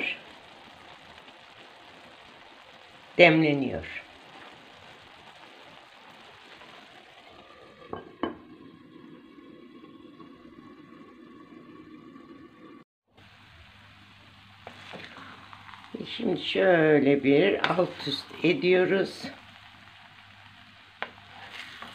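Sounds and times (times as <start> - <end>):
rice sizzling in a pan: 0.0 - 21.9.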